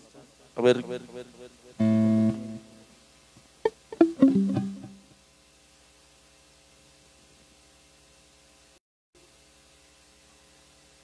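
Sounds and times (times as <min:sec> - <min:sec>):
electric guitar notes: 0:01.7 - 0:03.0, 0:03.6 - 0:05.1.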